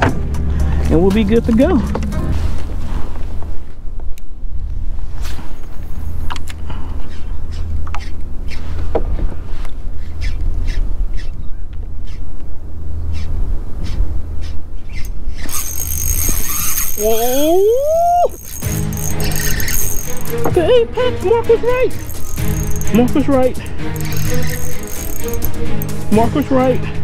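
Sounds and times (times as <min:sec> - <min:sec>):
high steady buzz: 0:15.4 - 0:20.5, 0:22.0 - 0:26.1.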